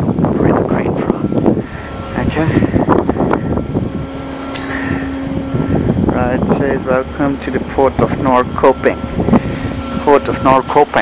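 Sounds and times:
ship machinery humming: 0.0s - 11.0s
wind rumble on microphone: 0.0s - 11.0s.

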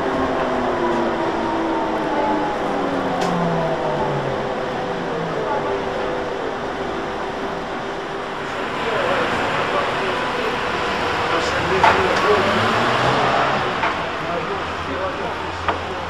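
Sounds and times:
street noise: 0.0s - 16.0s
trolleybus running: 0.0s - 16.0s
voices: 0.0s - 16.0s.

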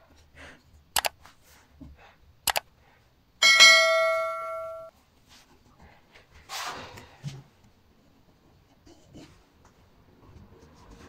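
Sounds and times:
notification bell ding: 3.4s - 4.9s.

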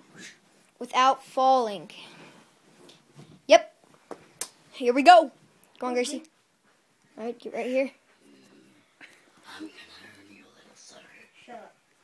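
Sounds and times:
hushed whispered talking: 8.3s - 11.8s.

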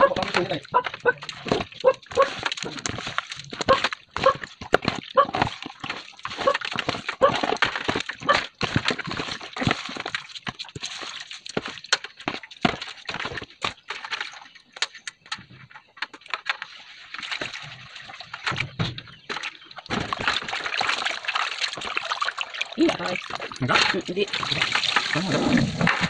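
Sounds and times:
animal calling: 0.0s - 2.4s
water splashing in a basin: 0.0s - 26.0s.

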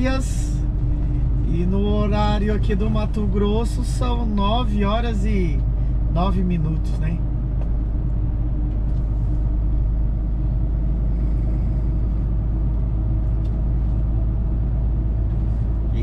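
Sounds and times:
truck engine and road noise: 0.0s - 16.0s.

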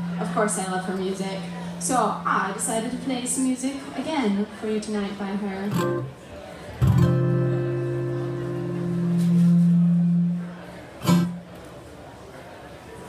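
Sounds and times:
acoustic guitar chord strummed: 5.7s - 6.2s, 6.8s - 11.6s.

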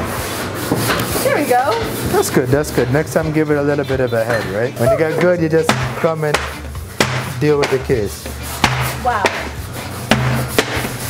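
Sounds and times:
metal dough cutter knocking on table: 5.6s - 7.8s.

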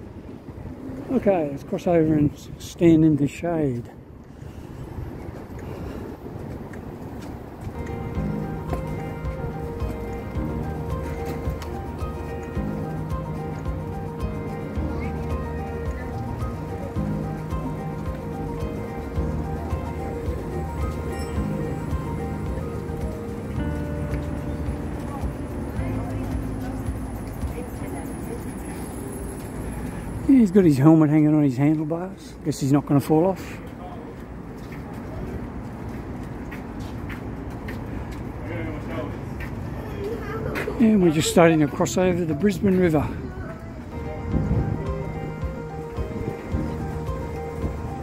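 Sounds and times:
music with sustained chords: 7.6s - 30.0s, 43.9s - 48.0s.

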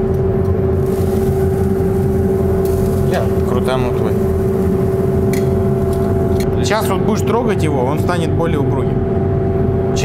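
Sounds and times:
extractor hood fan humming: 0.0s - 10.0s.

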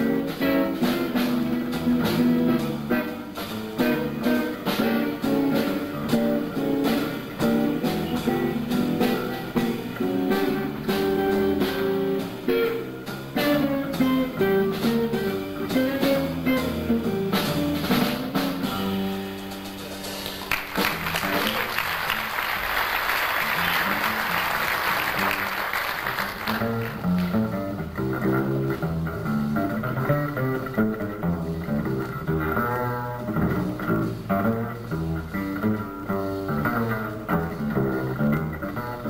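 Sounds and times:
double bass: 0.0s - 39.0s
drums: 0.0s - 39.0s
electric guitar: 0.0s - 39.0s
audience applauding: 20.0s - 27.4s.

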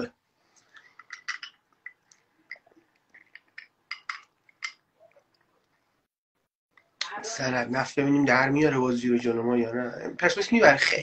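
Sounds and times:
glass clinking with straw: 0.8s - 4.8s.

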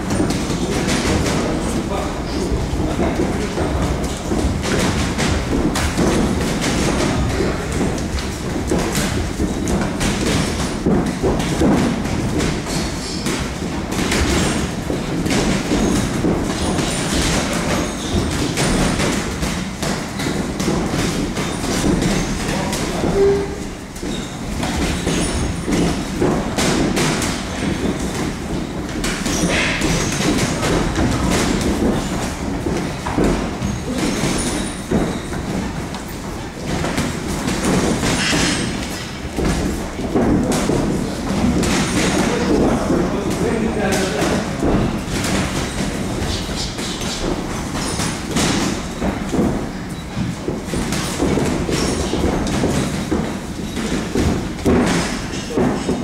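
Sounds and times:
boxing gloves thudding: 0.0s - 1.8s, 2.4s - 56.0s
low rumble of gym noise: 0.0s - 56.0s
shuffling footwork on canvas: 0.0s - 56.0s.

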